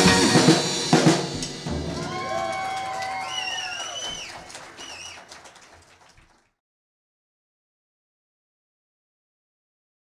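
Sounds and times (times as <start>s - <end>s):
electric guitar and drums: 0.0s - 3.0s.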